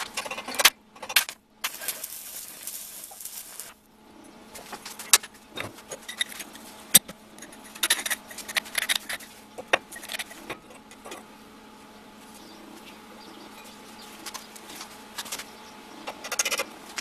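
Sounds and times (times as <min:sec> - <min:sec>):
welding arc hissing: 0:01.6 - 0:03.9.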